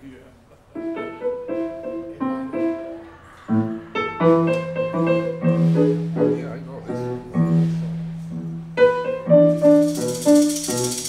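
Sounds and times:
piano chords ringing: 0.7 - 11.0.

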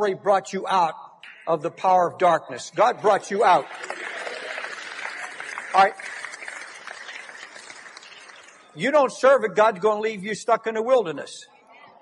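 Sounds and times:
congregation applauding: 3.0 - 9.0.

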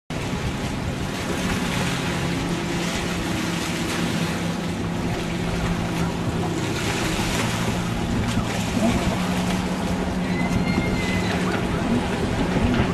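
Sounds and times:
boat motor humming: 0.1 - 12.9
choppy water: 0.1 - 12.9.

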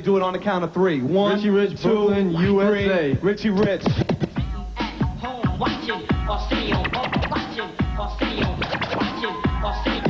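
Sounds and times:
vinyl record scratching: 0.0 - 10.0
hip-hop beat with heavy bass: 1.7 - 10.0.

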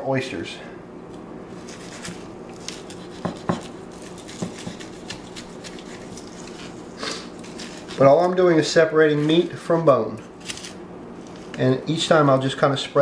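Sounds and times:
faint steady hum: 0.0 - 13.0
knife cutting raw meat: 1.7 - 6.8.

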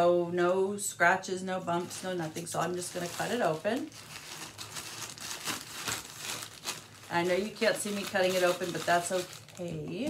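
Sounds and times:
packaging crinkling and rustling: 1.7 - 10.0.

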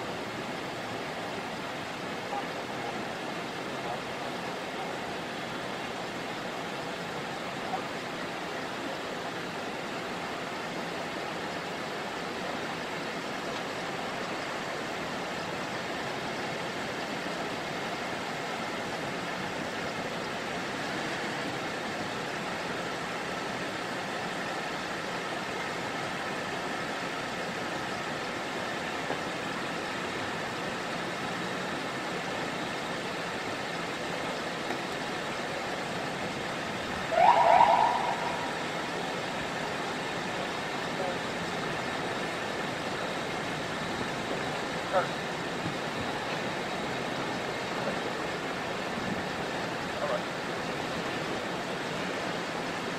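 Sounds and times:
police cars idling: 0.1 - 52.9
police siren whoop: 37.0 - 38.9.

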